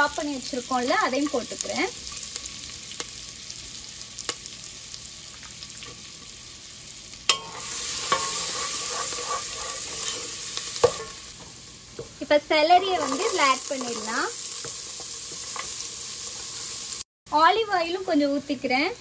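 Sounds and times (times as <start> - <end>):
butter sizzling in a pot: 0.0 - 17.1
wooden spoon stirring and scraping: 7.4 - 11.2, 12.7 - 16.8.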